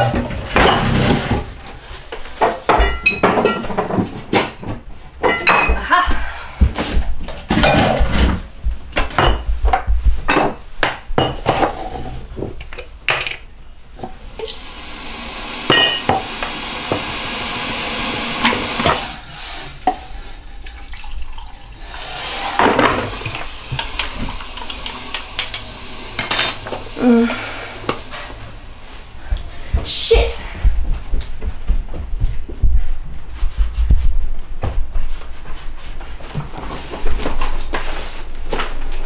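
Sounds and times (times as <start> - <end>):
crockery and cutlery clinking: 0.0 - 1.4, 2.4 - 4.1, 5.2 - 5.8, 7.5 - 8.4, 15.7 - 16.2, 25.4 - 26.9
kettle heating with rushing hiss: 14.1 - 20.6, 21.3 - 30.8.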